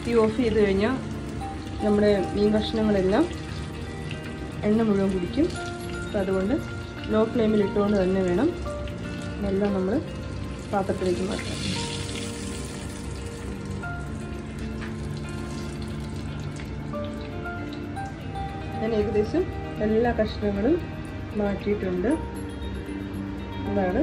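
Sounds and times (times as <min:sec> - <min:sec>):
oil sizzling in a frying pan: 0:00.0 - 0:23.0
background music: 0:00.0 - 0:24.0.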